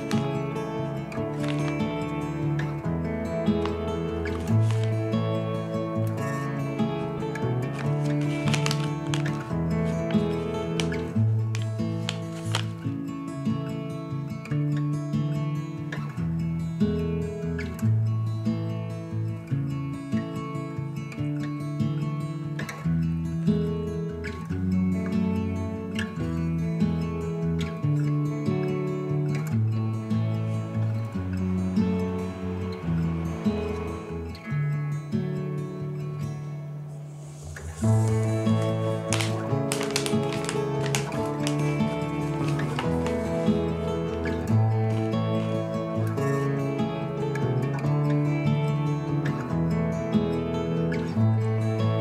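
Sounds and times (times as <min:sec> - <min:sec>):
instrumental background music: 0:00.0 - 0:18.1, 0:25.0 - 0:52.0.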